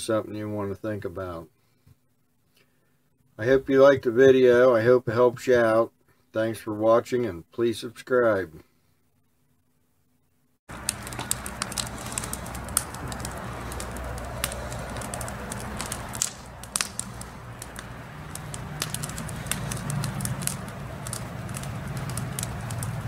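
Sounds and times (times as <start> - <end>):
low steady hum: 0.0 - 23.0
wood fire crackling and popping: 10.7 - 23.0.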